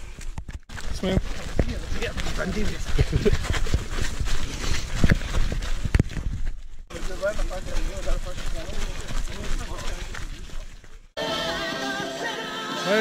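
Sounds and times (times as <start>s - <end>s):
footsteps jogging on dirt: 0.0s - 11.2s
people talking: 6.9s - 10.2s.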